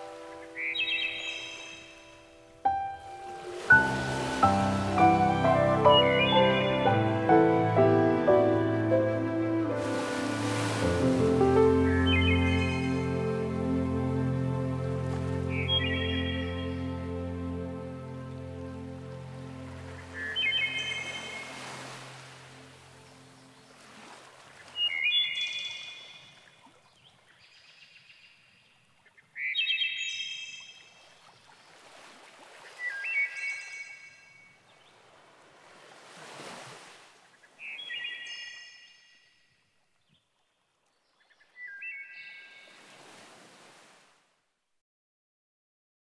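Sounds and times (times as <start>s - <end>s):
background music: 0.0s - 23.7s
bird calling: 0.2s - 2.0s, 3.3s - 7.0s
waves washing on shore: 3.0s - 6.2s, 9.6s - 11.8s, 19.1s - 26.1s, 35.0s - 37.2s, 42.6s - 44.2s.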